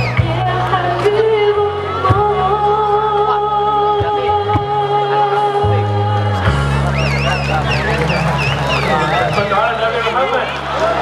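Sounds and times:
crowd noise: 0.0 - 11.0
keyboard chords: 0.0 - 11.0
voice over outdoor pa system: 7.0 - 10.8.

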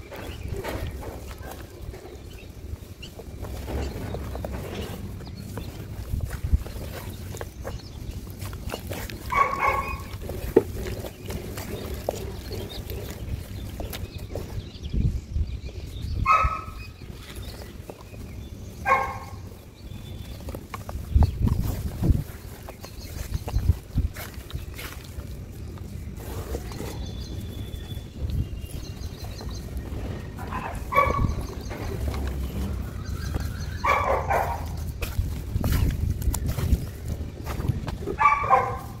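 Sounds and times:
dog barking: 9.3 - 10.1, 16.2 - 16.8, 18.8 - 19.4, 30.4 - 31.4, 33.8 - 34.7, 38.2 - 39.0
hands squelching through wet mud: 20.0 - 39.0.

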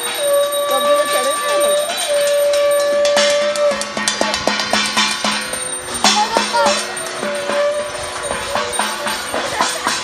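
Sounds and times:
conch shell blowing: 0.0 - 4.2, 7.1 - 8.8
hand bells clattering: 0.0 - 10.0.

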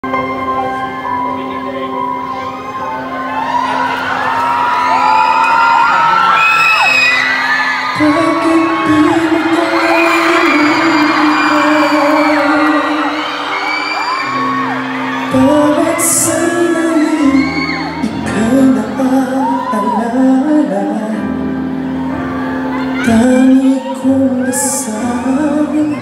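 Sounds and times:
crowd cheering and screaming: 0.0 - 26.0
sustained ballad chords: 6.5 - 26.0
man singing: 7.9 - 13.7, 15.2 - 21.6, 23.0 - 26.0.

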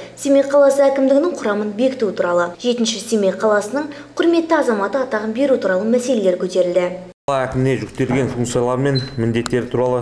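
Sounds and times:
man speaking into a microphone: 7.3 - 10.0.

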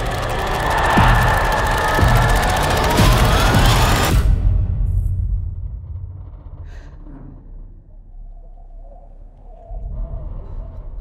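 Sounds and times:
low ominous rumble: 0.0 - 11.0.

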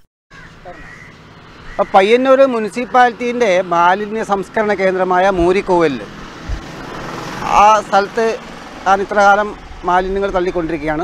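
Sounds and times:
steady rushing noise: 1.2 - 11.0
man speaking: 1.8 - 6.2, 7.4 - 11.0.

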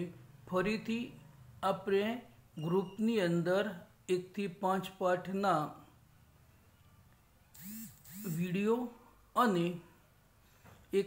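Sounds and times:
person speaking: 7.6 - 9.9.

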